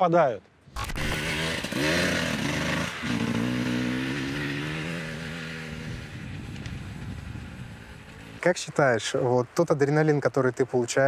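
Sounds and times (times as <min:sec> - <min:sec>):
motorcycle engine revving: 0:00.8 - 0:08.5.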